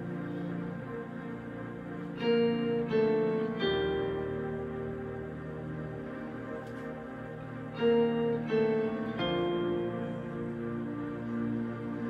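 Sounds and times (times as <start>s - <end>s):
electric guitar ringing notes: 2.2s - 5.8s, 7.8s - 10.9s
soft keyboard backing: 5.9s - 12.0s.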